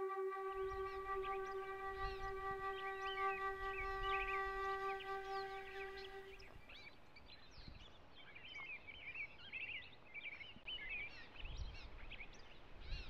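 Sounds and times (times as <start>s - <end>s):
birds chirping: 0.0s - 6.4s
flute holding low note: 0.0s - 6.5s.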